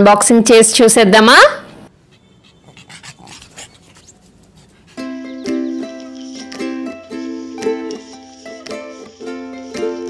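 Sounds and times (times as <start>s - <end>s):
dog panting: 2.0s - 6.6s.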